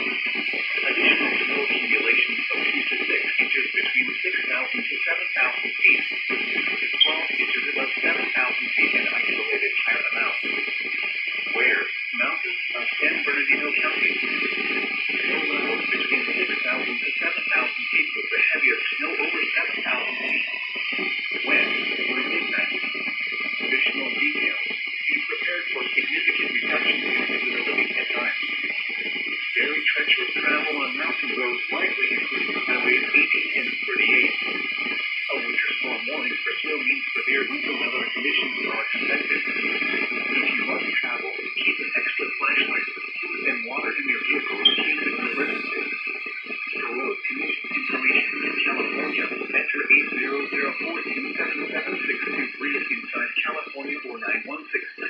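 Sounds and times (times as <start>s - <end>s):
radio music with voice: 0.0s - 55.0s.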